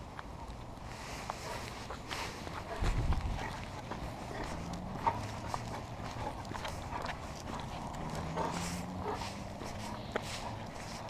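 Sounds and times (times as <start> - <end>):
dog claws clicking on asphalt: 0.0 - 11.0
footsteps on asphalt: 0.0 - 11.0.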